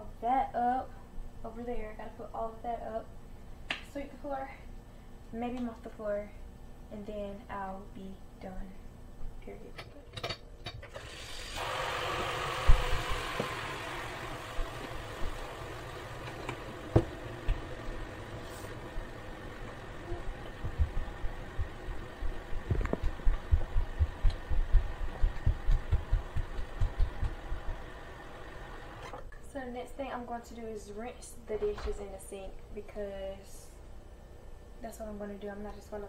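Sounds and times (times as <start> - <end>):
dancing feet thumping on floor: 22.6 - 27.4.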